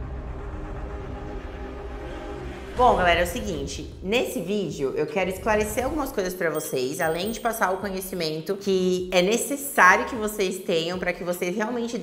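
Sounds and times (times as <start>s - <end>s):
low rumbling drone with held tones: 0.0s - 6.3s.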